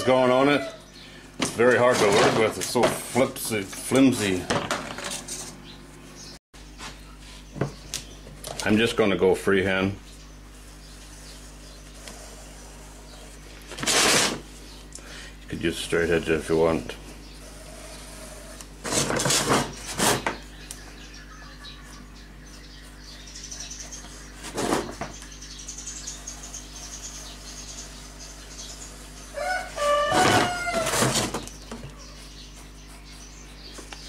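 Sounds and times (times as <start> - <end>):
rooster crowing: 0.0 - 0.9, 29.3 - 31.3
steady low hum: 0.0 - 34.0.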